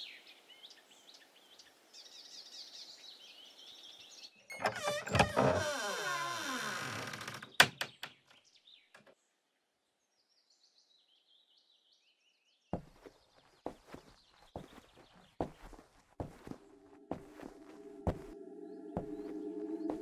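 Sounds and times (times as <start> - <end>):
birds chirping faintly: 0.0 - 20.0
wooden door creaking open: 4.5 - 8.1.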